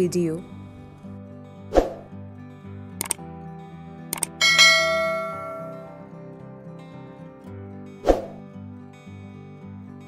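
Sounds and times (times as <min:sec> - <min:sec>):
soft background music: 0:00.0 - 0:10.0
double click sound effect: 0:03.0 - 0:03.2
bell ding: 0:04.4 - 0:06.0.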